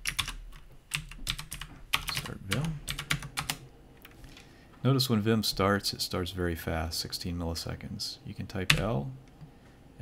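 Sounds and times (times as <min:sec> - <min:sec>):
keyboard keystrokes: 0:00.0 - 0:04.2.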